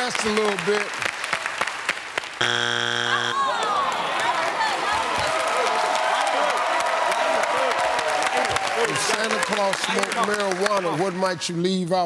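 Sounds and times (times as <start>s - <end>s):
audience clapping and laughing: 0.0s - 2.4s, 3.4s - 11.4s
loud electronic buzzer: 2.4s - 3.6s.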